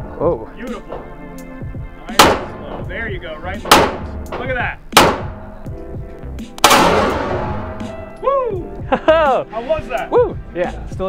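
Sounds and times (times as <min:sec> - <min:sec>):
background music: 0:00.0 - 0:11.0
pistol shots ringing indoors: 0:02.2 - 0:02.6, 0:03.7 - 0:04.2, 0:05.0 - 0:05.4, 0:06.6 - 0:07.8.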